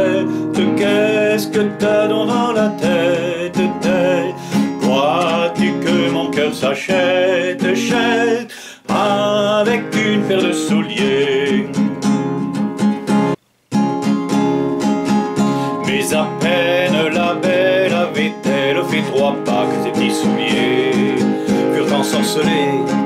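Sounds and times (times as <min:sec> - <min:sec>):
wavering vocal melody: 0:00.0 - 0:11.9, 0:15.7 - 0:23.0
classical guitar strummed: 0:00.0 - 0:23.0.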